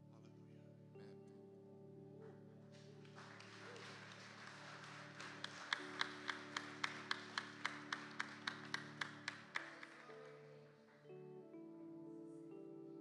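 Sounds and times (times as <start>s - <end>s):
congregation applause: 2.7s - 11.1s
sharp rhythmic claps: 2.8s - 10.4s.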